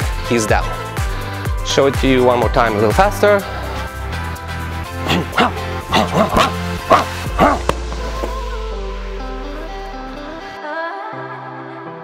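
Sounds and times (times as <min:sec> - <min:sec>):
background music with bass line: 0:00.0 - 0:10.6.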